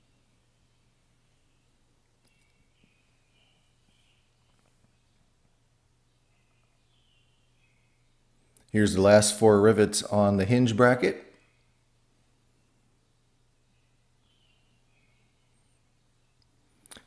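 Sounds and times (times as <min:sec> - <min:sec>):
faint high chirps: 0:00.0 - 0:09.6, 0:10.8 - 0:17.0
faint low hum: 0:00.0 - 0:17.0.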